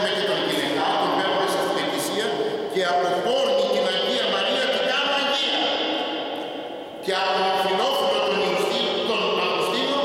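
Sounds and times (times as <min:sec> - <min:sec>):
man preaching into a microphone: 0:00.0 - 0:06.0, 0:07.0 - 0:10.0.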